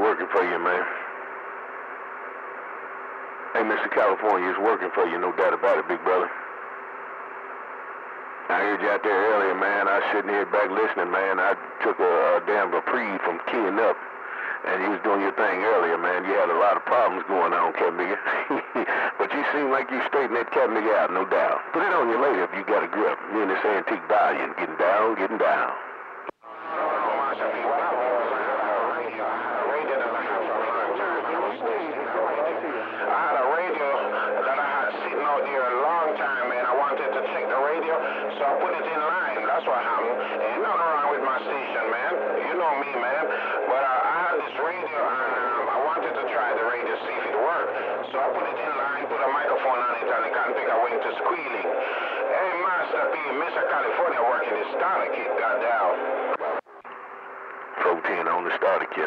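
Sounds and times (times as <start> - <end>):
voice over am radio: 0.0 - 1.1, 3.6 - 6.4, 8.5 - 25.8, 26.6 - 56.7, 57.8 - 59.0
low steady hum: 0.0 - 59.0.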